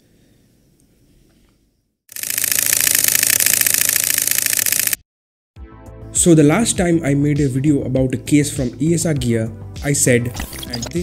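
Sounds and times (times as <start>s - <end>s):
fast mechanical rattling buzz: 2.1s - 5.0s.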